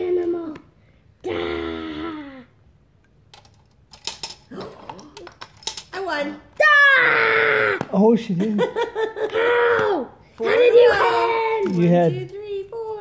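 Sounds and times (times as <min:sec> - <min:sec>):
person squealing: 0:01.2 - 0:02.5, 0:06.8 - 0:07.8.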